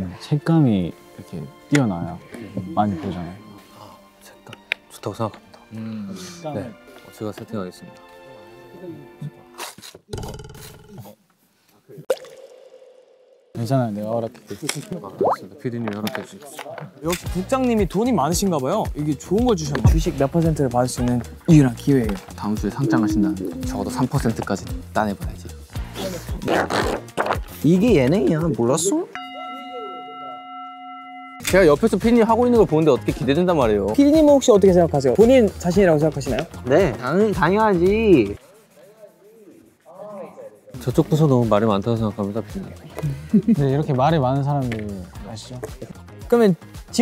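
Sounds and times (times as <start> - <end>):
background music: 0.0 - 9.9, 13.6 - 38.7, 39.5 - 47.0
bell-like ringing tone: 29.2 - 31.6.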